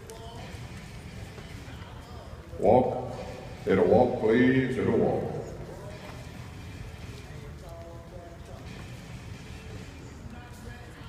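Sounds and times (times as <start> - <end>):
faint background voices: 4.3 - 11.0.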